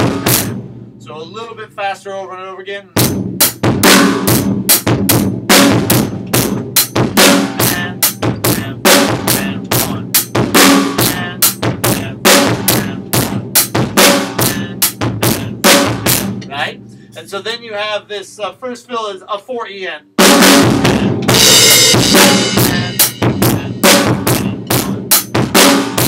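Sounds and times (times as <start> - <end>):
drum kit playing rock groove: 0.0 - 1.5, 2.8 - 18.9, 20.2 - 26.0.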